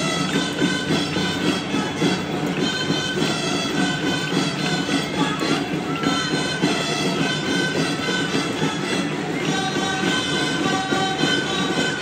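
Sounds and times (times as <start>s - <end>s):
live folk dance music: 0.0s - 12.0s.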